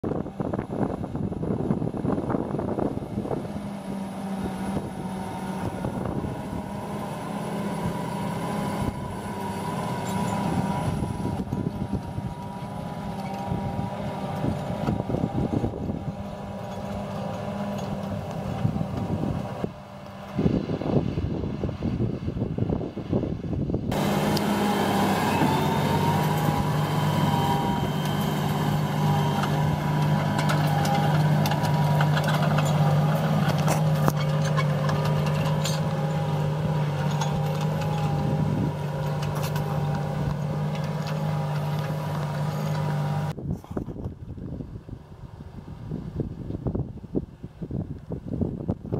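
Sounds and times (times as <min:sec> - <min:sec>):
wind rumble on microphone: 0:00.0 - 0:07.0, 0:07.6 - 0:24.0, 0:25.3 - 0:41.1, 0:43.2 - 0:48.9
tractor diesel engine under load: 0:00.0 - 0:48.9.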